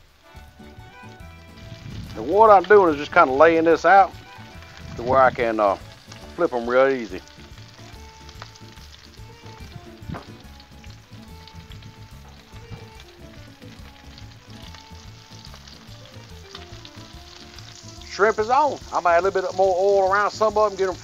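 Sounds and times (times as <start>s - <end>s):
shrimp sizzling in oil: 0.0s - 21.0s.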